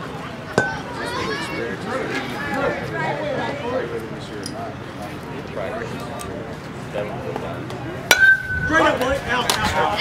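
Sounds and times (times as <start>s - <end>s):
indistinct voices chattering: 0.0s - 10.0s.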